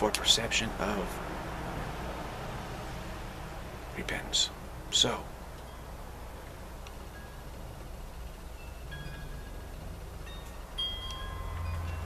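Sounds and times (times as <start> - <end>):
low steady hum: 0.0 - 12.0
soft ringing chime notes: 8.5 - 12.0.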